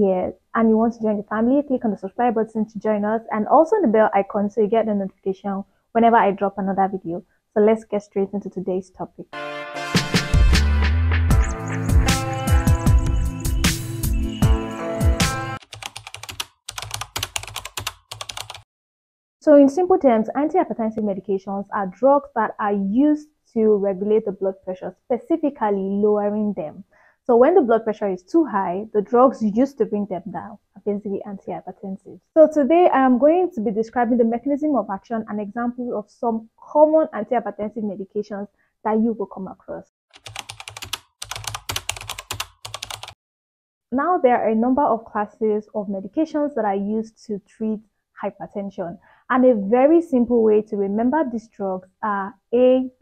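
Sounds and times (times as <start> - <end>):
computer keyboard typing: 11.4 - 13.8, 15.6 - 18.7, 40.1 - 43.2.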